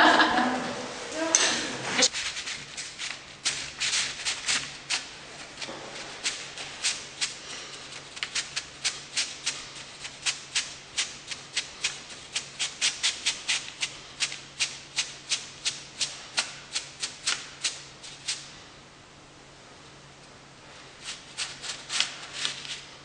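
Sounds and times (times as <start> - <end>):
dry sharp rattling strokes: 2.0 - 18.5.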